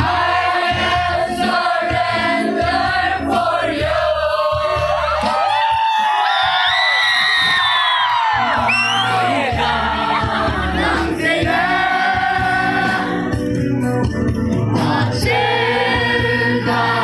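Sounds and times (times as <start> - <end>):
crowd singing along: 0.0 - 6.6, 8.2 - 17.0
backing music: 0.0 - 17.0.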